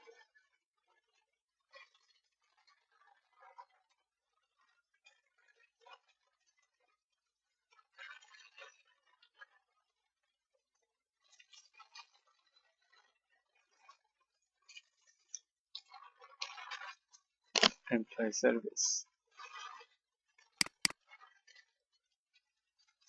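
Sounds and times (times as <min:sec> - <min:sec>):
keyboard typing: 0:20.6 - 0:20.9.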